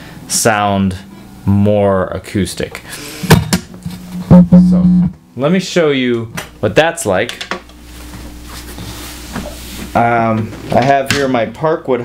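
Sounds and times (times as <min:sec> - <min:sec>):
guitar strings ringing: 0:03.6 - 0:05.2.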